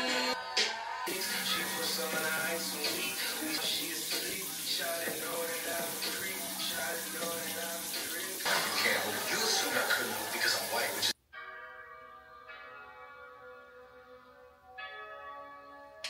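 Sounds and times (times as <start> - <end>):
sink tap running: 1.1 - 11.1
quiet music: 1.1 - 16.0.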